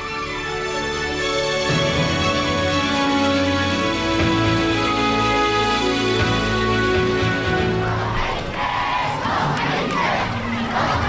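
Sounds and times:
crowd shouting: 7.7 - 11.0.

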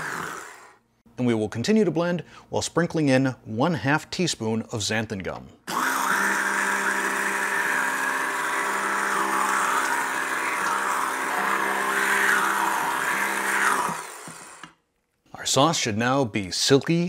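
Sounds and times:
immersion blender motor humming: 0.0 - 0.8, 5.7 - 14.7.

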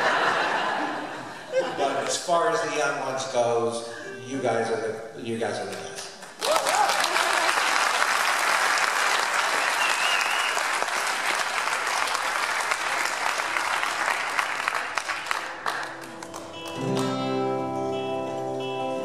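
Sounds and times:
audience applauding: 6.2 - 17.4
person whooping: 6.4 - 7.6
whistle: 9.5 - 10.7.

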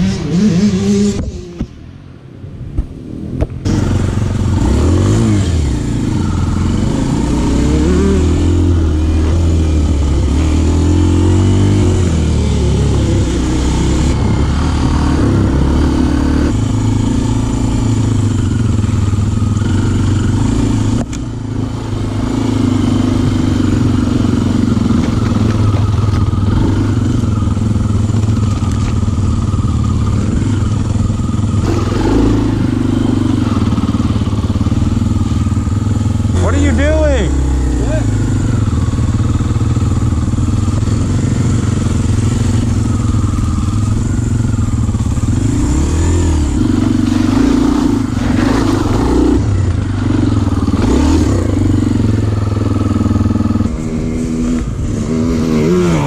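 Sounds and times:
dirt bike engine revving: 0.0 - 1.6, 3.0 - 56.0.

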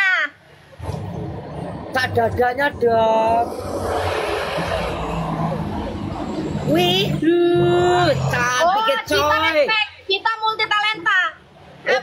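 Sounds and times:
road noise rushing: 0.4 - 12.0
vehicle engine hum: 0.4 - 12.0.

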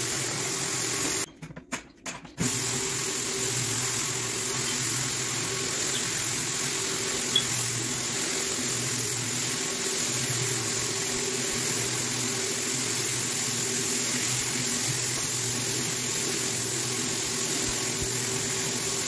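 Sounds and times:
floor buffer motor hum: 0.0 - 1.3, 2.4 - 19.0
abrasive screen hissing on wood: 2.4 - 19.0.

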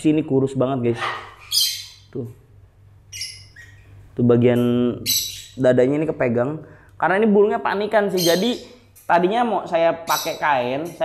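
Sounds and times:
parrot squawk: 0.9 - 2.1, 3.1 - 4.0, 5.0 - 5.6, 8.2 - 8.8.

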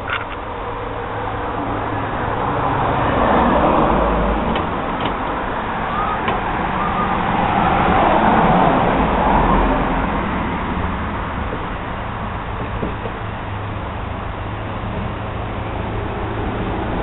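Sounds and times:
road traffic rushing: 0.0 - 17.0
vehicle passing: 0.5 - 12.5, 13.3 - 17.0.

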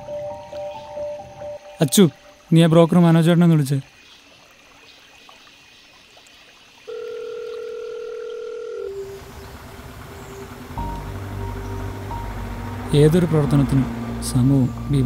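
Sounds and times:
soft background music: 0.0 - 2.5, 10.0 - 15.0
telephone call tone: 6.9 - 9.2
low bass: 9.2 - 15.0.

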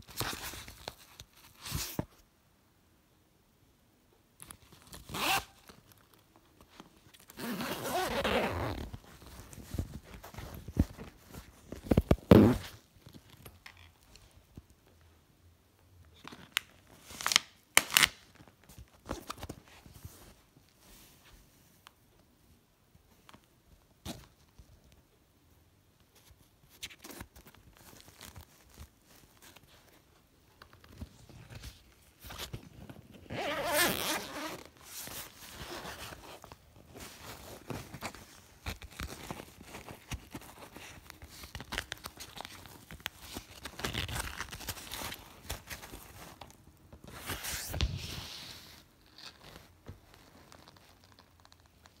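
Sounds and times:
backpack zipper being pulled: 5.1 - 5.5, 7.4 - 8.9, 33.3 - 34.6.

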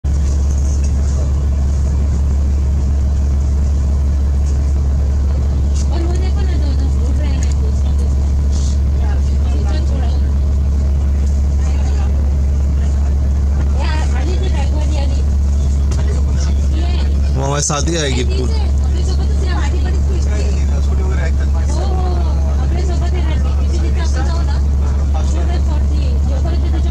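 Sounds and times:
vehicle engine and road rumble: 0.0 - 26.9
indistinct voices talking: 0.1 - 26.9.

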